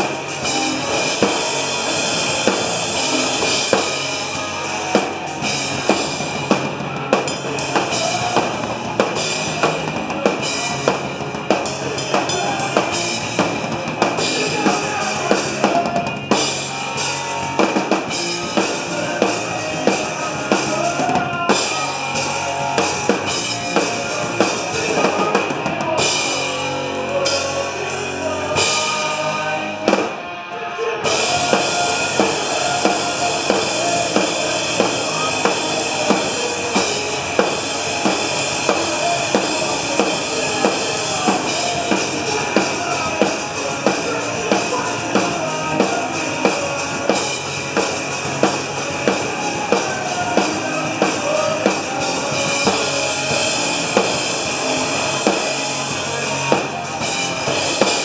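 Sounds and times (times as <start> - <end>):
bass guitar: 0.0 - 58.0
electric guitars: 0.0 - 58.0.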